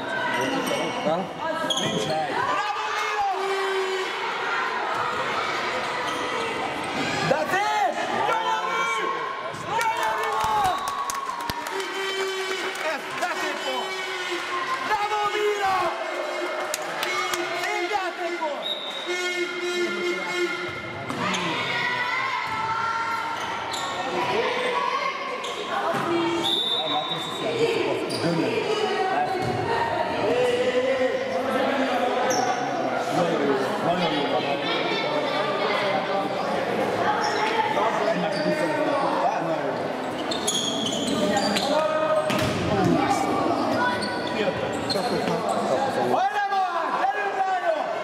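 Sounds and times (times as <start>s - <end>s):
echoing shouting voices: 2.2s - 32.1s
ball bouncing on hall floor: 42.3s - 43.0s.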